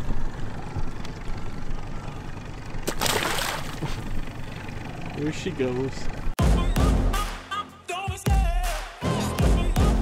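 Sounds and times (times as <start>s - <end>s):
boat motor rumble: 0.0s - 6.4s
water splash: 2.8s - 4.0s.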